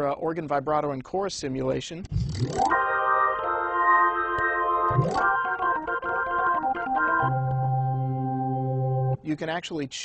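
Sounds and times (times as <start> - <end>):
organ playing sustained chords: 2.7 - 9.2.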